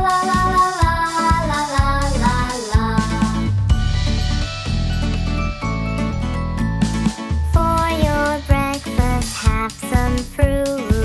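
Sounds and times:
child singing: 0:00.0 - 0:03.5, 0:07.6 - 0:11.0
backing music with steady beat: 0:00.0 - 0:11.0.

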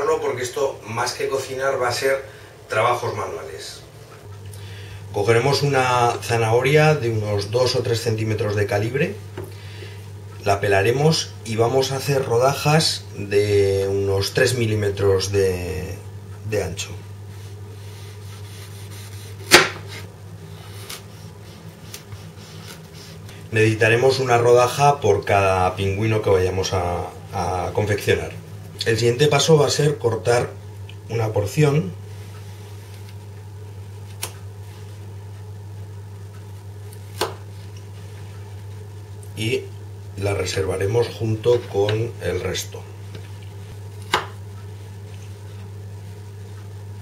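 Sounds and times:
low steady hum: 0:00.0 - 0:47.0
knife slicing carrot: 0:17.9 - 0:20.1.

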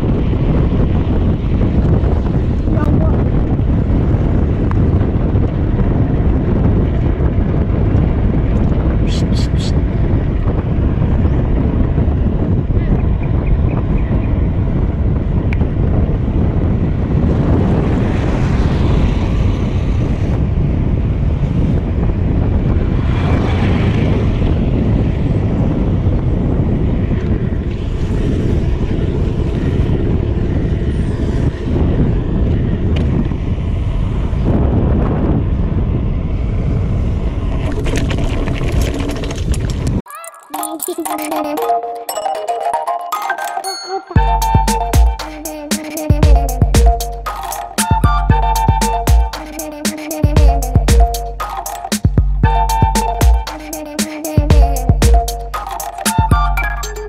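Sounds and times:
wind buffeting the microphone: 0:00.0 - 0:40.1
sharp high ticks: 0:44.4 - 0:57.0.

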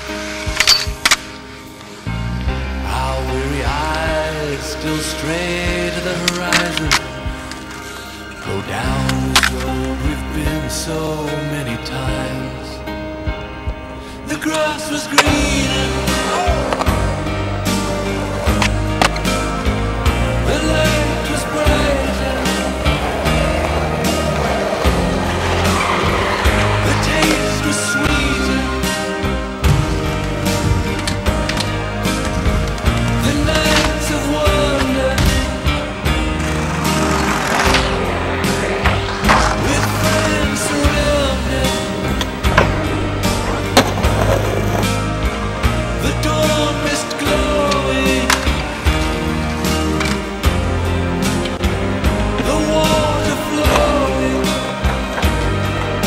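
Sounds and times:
music: 0:00.0 - 0:56.0
rock song: 0:00.0 - 0:56.0
skateboard wheels rolling on concrete: 0:00.0 - 0:56.0
skateboard clacks: 0:36.4 - 0:44.9.

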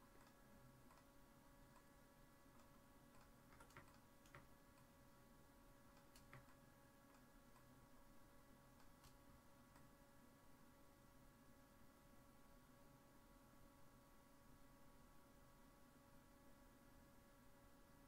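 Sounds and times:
faint room hum: 0:00.0 - 0:18.0
mouse and keyboard clicks: 0:02.6 - 0:04.5, 0:05.9 - 0:07.3, 0:08.8 - 0:09.2.

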